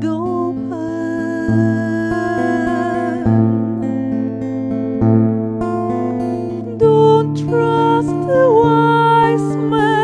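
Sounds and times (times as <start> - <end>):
woman singing: 0.0 - 4.0, 6.2 - 10.0
acoustic guitar lullaby: 0.0 - 10.0.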